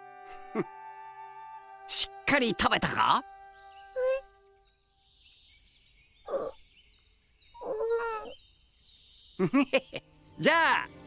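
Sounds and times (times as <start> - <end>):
faint high chirping: 3.1 - 11.0
young girl's hesitant voice: 4.0 - 4.3, 6.3 - 6.6, 7.6 - 8.4.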